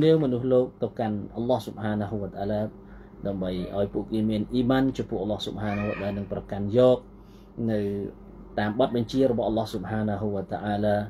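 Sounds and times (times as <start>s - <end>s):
man speaking: 0.0s - 7.0s, 7.6s - 11.0s.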